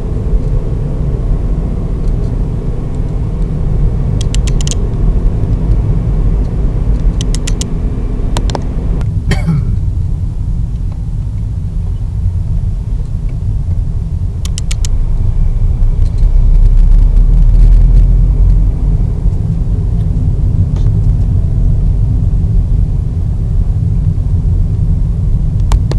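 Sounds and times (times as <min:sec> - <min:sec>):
road and engine rumble in car: 0:00.0 - 0:25.9
quick clicks: 0:04.2 - 0:04.8, 0:07.0 - 0:07.7, 0:14.4 - 0:15.0.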